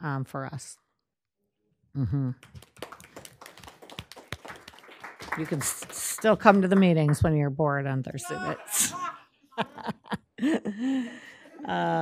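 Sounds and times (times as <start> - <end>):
people applauding: 2.4 - 7.3.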